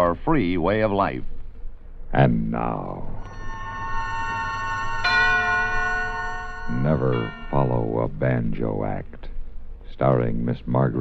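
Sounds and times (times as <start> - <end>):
bell-like musical sting: 2.8 - 8.2.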